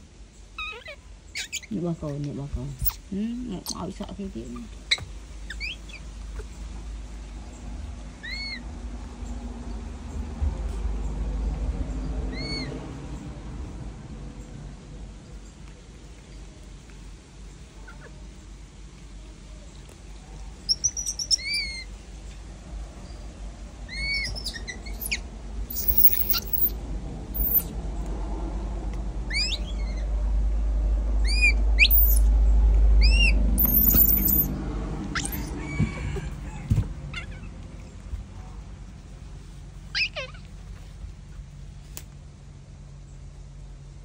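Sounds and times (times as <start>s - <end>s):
high-pitched animal chirping: 0.6s - 1.8s, 4.6s - 6.5s, 20.7s - 21.9s, 23.9s - 26.8s, 27.4s - 27.7s, 29.3s - 30.0s, 31.2s - 32.3s, 33.0s - 34.5s, 35.1s - 35.6s, 39.9s - 40.5s
low rumble: 21.9s - 39.9s.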